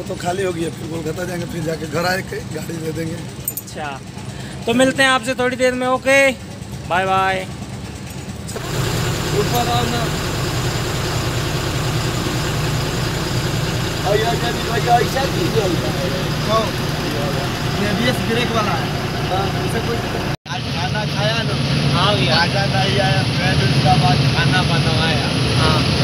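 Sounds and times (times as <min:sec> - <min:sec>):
diesel engine idling: 0:00.0 - 0:26.0.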